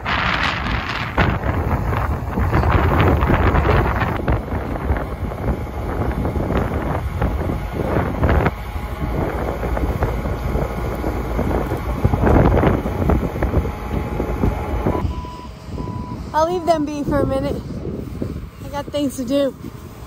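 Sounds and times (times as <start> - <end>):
diesel engine running under load: 0.0 - 20.0
wind buffeting microphone: 0.0 - 20.0.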